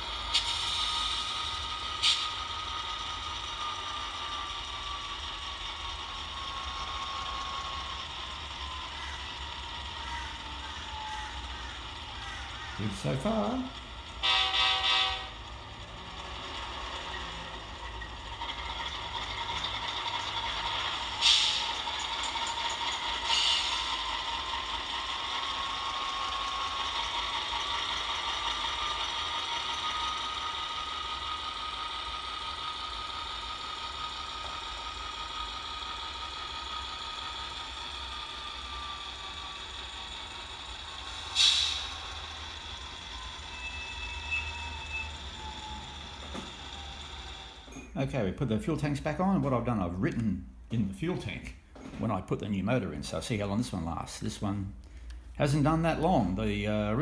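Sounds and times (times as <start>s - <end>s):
model train motor whine: 0.0s - 47.9s.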